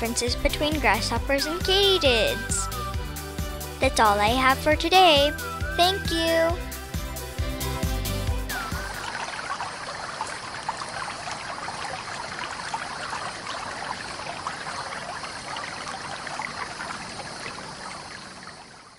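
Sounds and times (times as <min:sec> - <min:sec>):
trickling running water: 0:00.0 - 0:04.6, 0:08.1 - 0:18.9
music: 0:00.0 - 0:09.2.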